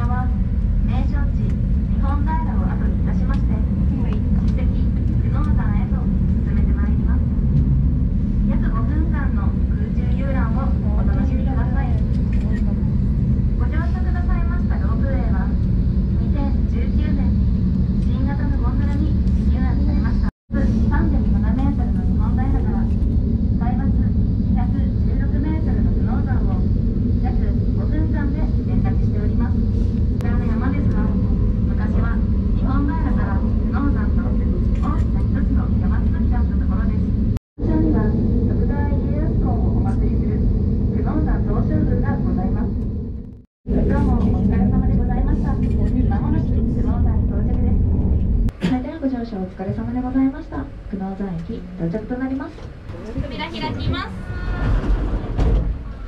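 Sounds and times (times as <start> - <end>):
people talking: 0.0 - 7.3, 8.5 - 12.9, 13.5 - 17.4, 18.0 - 29.6, 30.2 - 42.8, 43.7 - 54.8
gondola cabin low rumble: 0.0 - 56.0.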